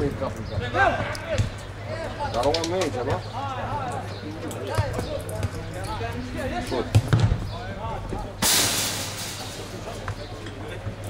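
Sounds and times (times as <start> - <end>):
football kicked and bouncing: 6.9 - 7.4.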